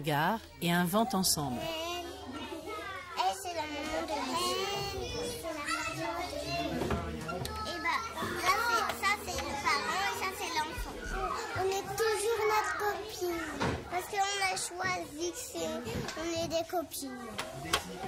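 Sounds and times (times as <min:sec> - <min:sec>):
children chattering: 0:00.8 - 0:18.0.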